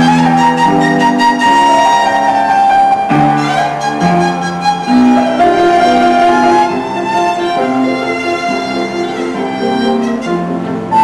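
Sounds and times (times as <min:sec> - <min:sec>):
piano chords: 0:00.0 - 0:11.0
violin holding a high note: 0:00.0 - 0:11.0.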